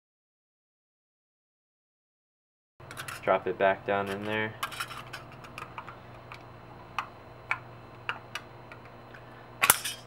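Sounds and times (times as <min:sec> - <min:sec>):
low steady hum: 0:02.8 - 0:10.0
thin metal disc clicking: 0:09.6 - 0:10.0.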